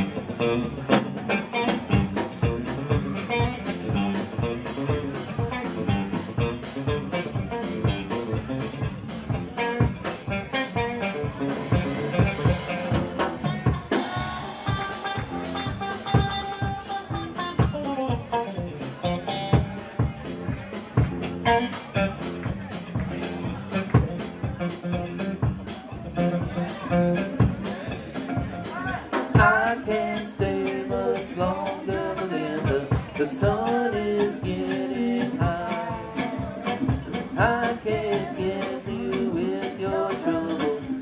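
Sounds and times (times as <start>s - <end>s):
drum kit beat: 0.0s - 41.0s
electric guitars: 0.0s - 41.0s.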